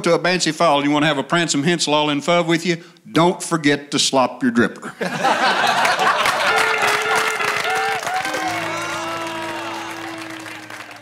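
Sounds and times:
audience applause: 5.4s - 11.0s
held musical note: 8.2s - 11.0s.

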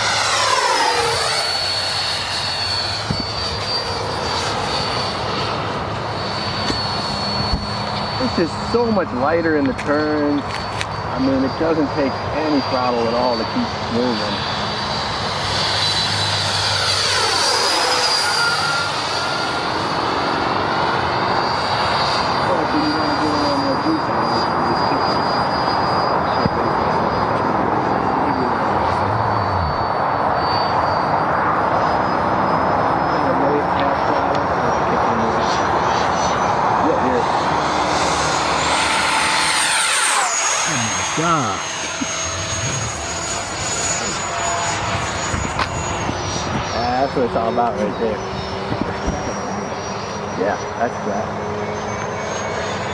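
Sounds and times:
high-pitched fan whine: 0.0s - 52.9s.

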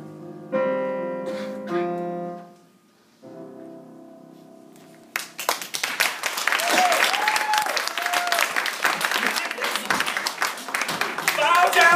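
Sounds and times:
audience applauding: 5.1s - 11.9s.

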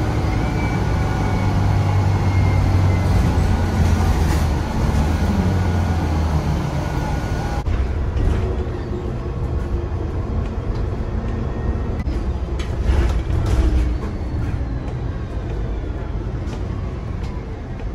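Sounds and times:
bus engine drone: 0.0s - 17.9s.

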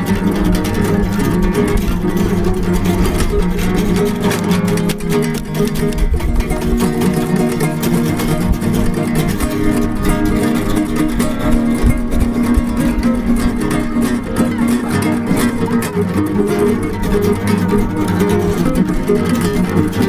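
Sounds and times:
plucked guitar music: 0.0s - 20.0s.

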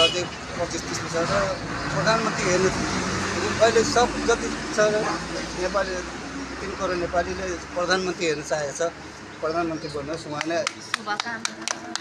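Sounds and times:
men talking: 0.0s - 11.0s
road traffic: 0.0s - 12.0s.

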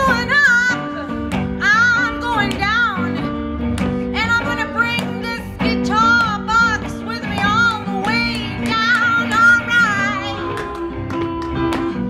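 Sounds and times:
cigar box guitar: 0.0s - 12.0s
electric guitar: 0.0s - 12.0s
woman singing blues: 0.0s - 12.0s.

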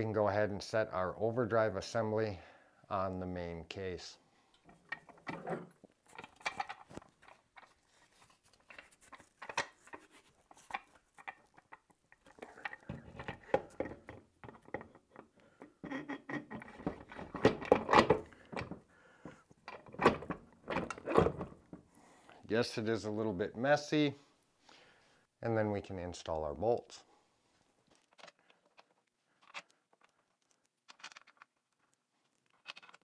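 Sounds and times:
metal knocks clicks and scrapes: 4.6s - 18.8s, 19.7s - 21.8s.

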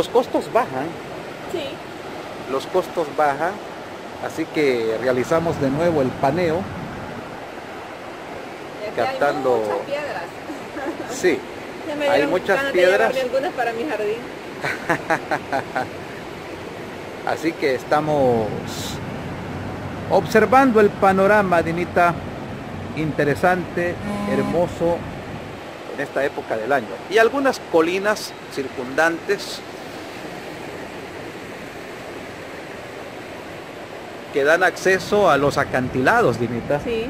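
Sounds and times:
waves breaking on shore: 0.0s - 37.0s.

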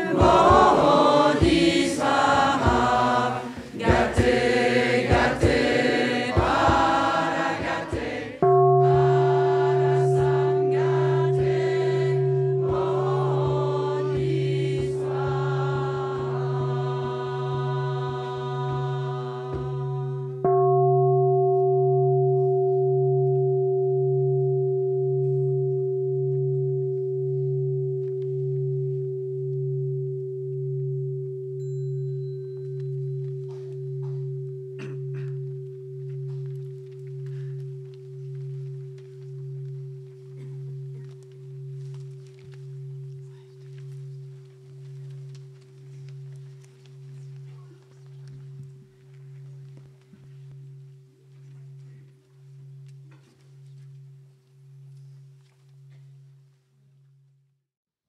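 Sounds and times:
voices chanting: 0.0s - 20.3s
bowl bell ringing: 0.0s - 57.4s
people moving rustling: 36.0s - 56.4s.

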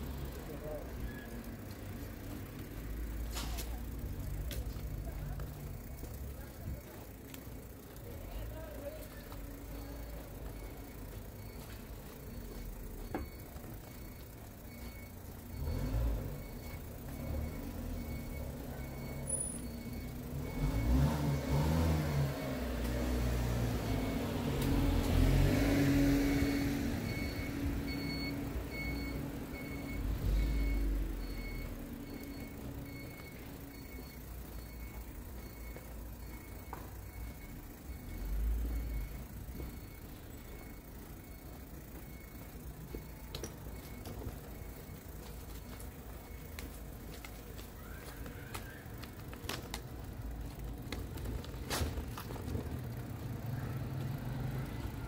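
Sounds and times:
truck engine driving: 0.0s - 55.0s
short high warning beeps: 9.1s - 22.7s, 26.3s - 46.9s.

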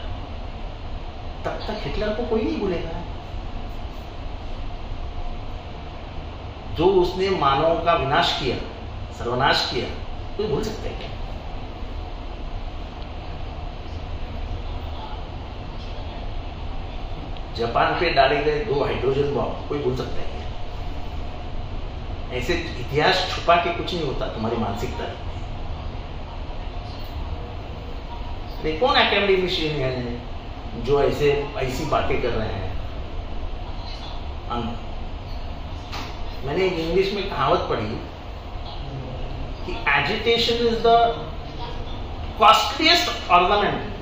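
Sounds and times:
low background rumble: 0.0s - 44.0s.

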